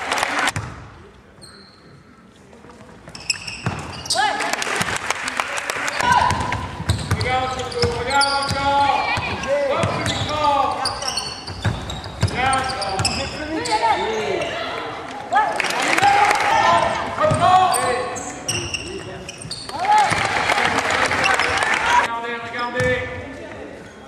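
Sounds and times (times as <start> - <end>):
basketball bouncing on court: 0.5 - 0.9, 3.0 - 4.2, 6.0 - 13.4, 16.7 - 17.9
players shouting: 5.8 - 11.4, 12.3 - 18.2, 19.7 - 22.1.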